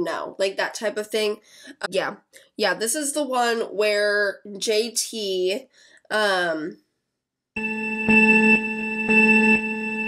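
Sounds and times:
low electronic beeps: 7.6 - 10.0
steady electronic tone: 7.6 - 10.0.

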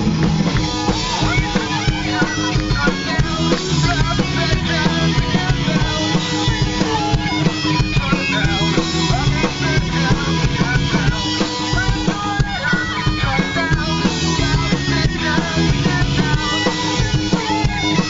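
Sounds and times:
bass guitar: 0.0 - 18.0
drum kit beat: 0.0 - 18.0
electric guitar: 0.0 - 18.0.

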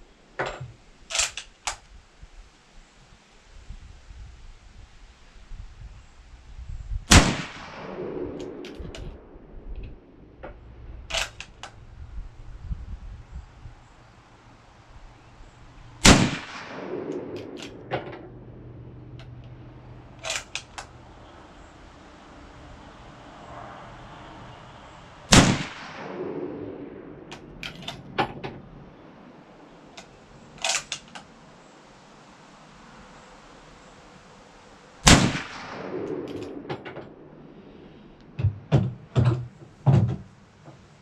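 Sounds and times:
rifle bolt clicking and clacking: 0.5 - 1.8, 11.1 - 11.8, 17.4 - 18.3, 19.2 - 19.6, 20.2 - 21.0, 27.3 - 28.3, 30.0 - 31.3, 36.2 - 37.0
sharp clicks: 1.1 - 1.9, 9.8 - 11.8, 20.2 - 21.0, 30.0 - 31.3
rifle shot: 7.1 - 9.3, 11.1 - 11.7, 16.0 - 18.6, 20.2 - 20.9, 25.3 - 28.2, 35.0 - 37.2.

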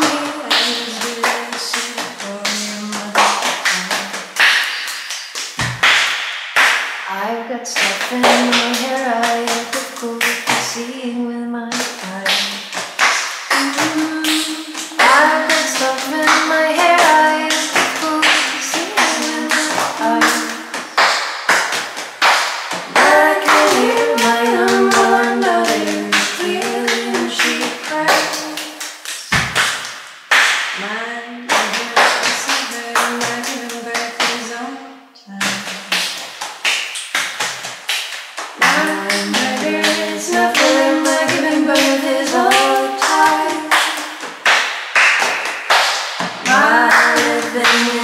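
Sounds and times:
women singing in harmony: 0.0 - 3.9, 7.1 - 12.6, 13.5 - 20.7, 22.9 - 28.8, 30.8 - 35.4, 38.6 - 44.2, 46.5 - 48.0
hand claps: 0.0 - 7.1, 7.8 - 10.8, 11.7 - 30.9, 31.5 - 34.4, 35.4 - 48.0.

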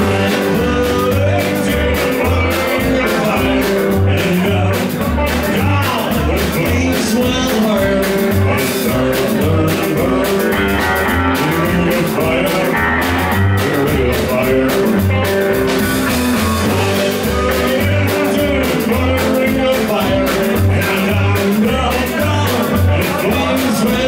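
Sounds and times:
double bass plucking: 0.0 - 24.0
drums: 0.0 - 24.0
electric guitar: 0.0 - 24.0.

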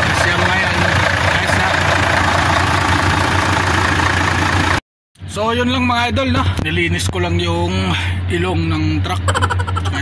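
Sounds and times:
truck engine idling: 0.0 - 4.8, 5.4 - 10.0.

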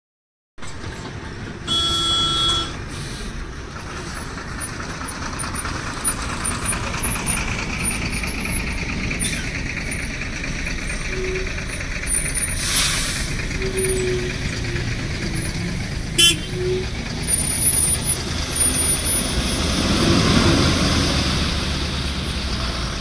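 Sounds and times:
diesel truck engines running: 0.6 - 23.0
truck horn: 1.6 - 2.8, 12.7 - 14.6, 16.1 - 17.0
air brake hiss: 2.9 - 3.4, 12.5 - 13.4.

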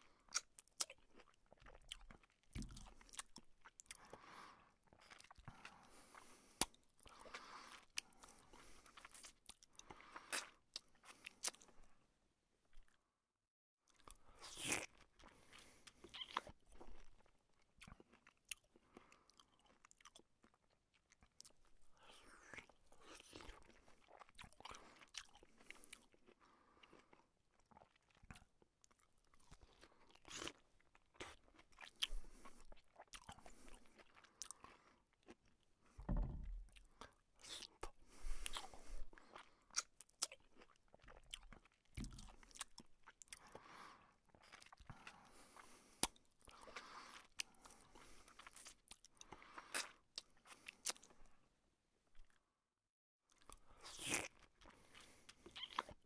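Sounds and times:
person chewing and biting food: 0.3 - 4.2, 4.8 - 11.8, 13.9 - 35.6, 36.2 - 51.2, 53.3 - 56.0.

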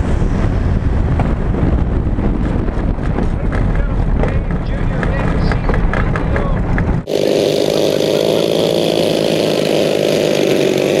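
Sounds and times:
model airplane engines buzzing: 7.0 - 11.0.

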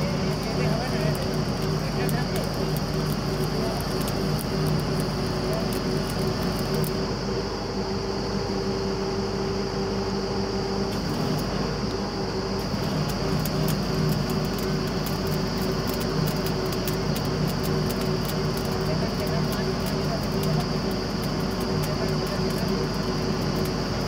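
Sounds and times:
rapid faint crackle: 0.0 - 7.1, 10.9 - 11.7, 12.5 - 24.0
drilling rig engine humming: 0.0 - 24.0
steady whine: 0.0 - 24.0.

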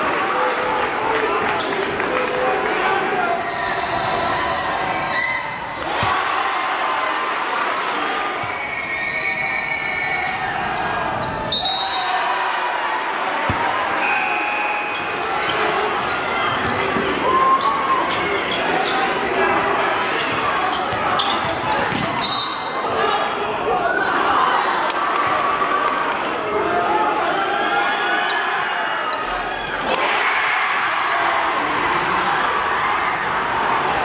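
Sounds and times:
crowd chatter and shouting: 0.0 - 34.0.

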